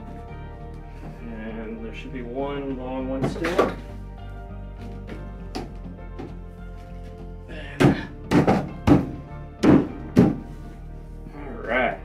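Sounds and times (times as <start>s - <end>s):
background music: 0.0s - 12.0s
plastic pipes thunking into fittings: 7.7s - 10.5s.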